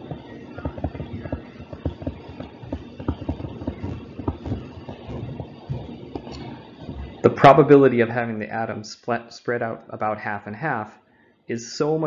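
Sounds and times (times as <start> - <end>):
stylus tapping on tablet: 0.0 - 7.2.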